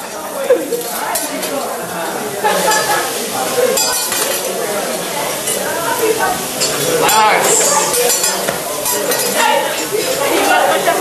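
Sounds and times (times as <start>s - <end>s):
food sizzling on a griddle: 0.0s - 11.0s
metal utensils and dishes clinking: 0.0s - 11.0s.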